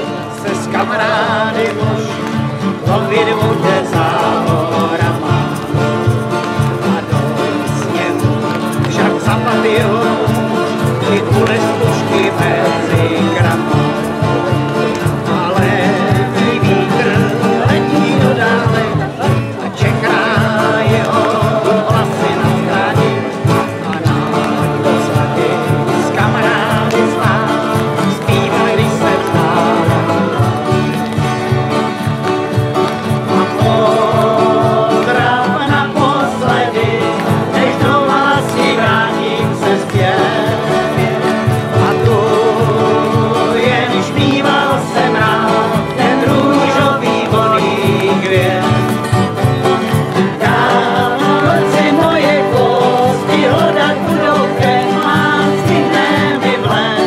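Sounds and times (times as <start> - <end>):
acoustic guitars strummed: 0.0 - 57.0
voices singing along: 0.0 - 57.0.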